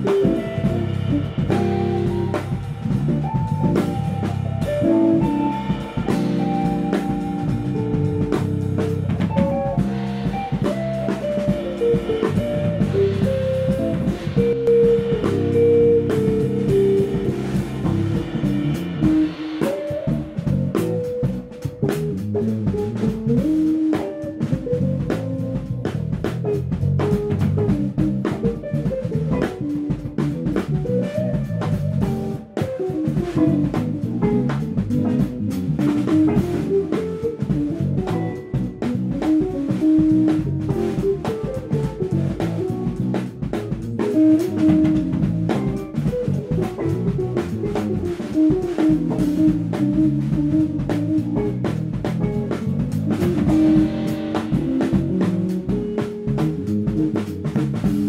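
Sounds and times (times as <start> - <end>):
funk band playing: 0.0 - 58.0.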